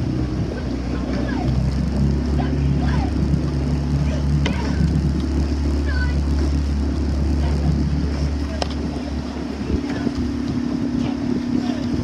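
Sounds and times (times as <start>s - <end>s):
outboard motor running: 0.0s - 12.0s
water noise: 0.0s - 12.0s
wind noise on microphone: 0.0s - 12.0s.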